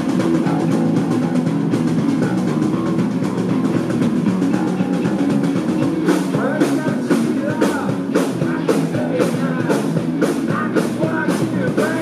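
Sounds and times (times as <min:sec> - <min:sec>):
drum kit: 0:00.0 - 0:12.0
electric bass guitar: 0:00.0 - 0:12.0
electric guitar: 0:00.0 - 0:12.0.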